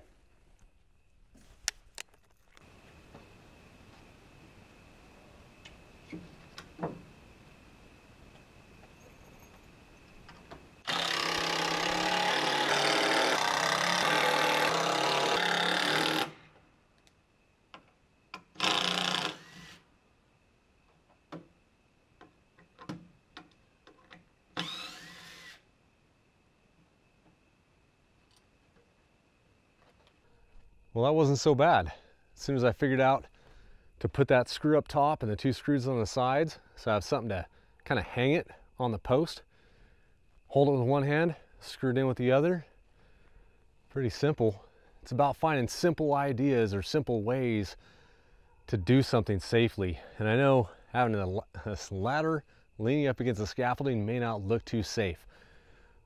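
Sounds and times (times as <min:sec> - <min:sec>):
cordless drill driving screws: 0:10.8 - 0:16.4, 0:18.6 - 0:19.8, 0:24.6 - 0:25.6.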